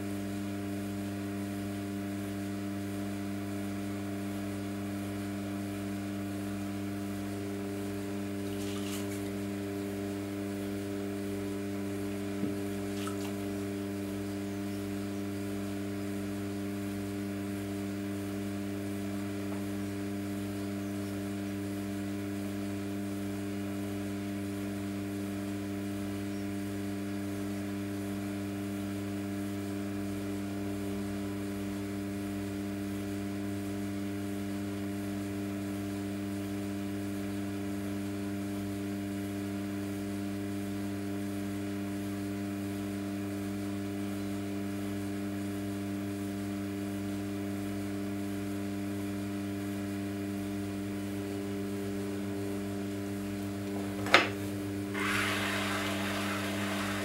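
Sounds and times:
pottery wheel motor humming: 2.0 - 33.0, 49.2 - 57.0.

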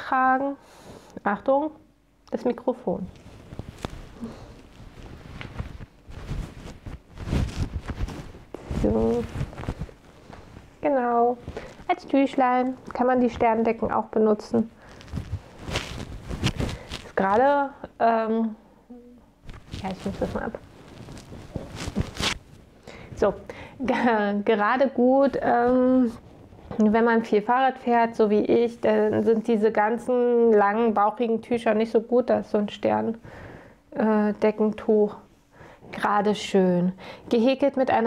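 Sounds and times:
cloth rustling against microphone: 2.9 - 17.7, 19.3 - 24.3, 24.9 - 29.5.

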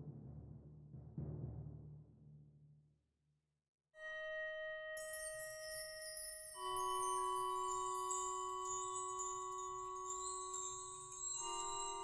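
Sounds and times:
metallic percussion ringing: 5.0 - 12.0.

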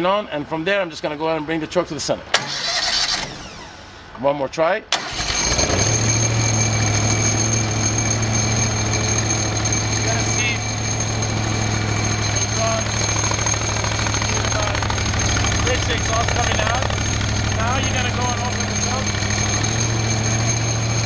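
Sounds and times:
engine starting and running: 2.3 - 4.2, 4.9 - 21.0
high whine: 5.8 - 21.0.

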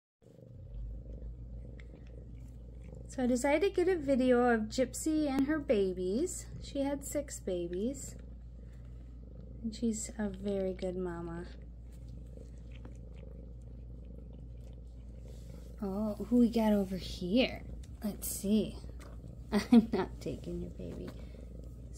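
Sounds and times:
cat purring: 0.2 - 21.9.

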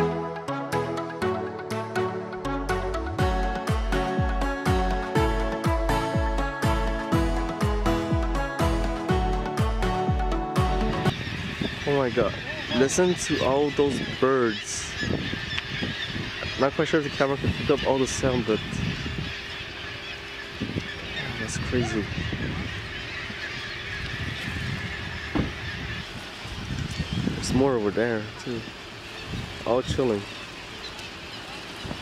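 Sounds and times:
music with pulsing beat: 0.0 - 11.1
gulls calling: 0.0 - 32.0.

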